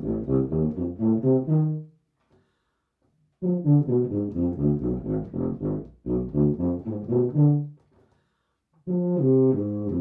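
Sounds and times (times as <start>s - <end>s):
tuba playing a scale run: 0.0s - 2.0s, 3.4s - 7.8s, 8.8s - 10.0s.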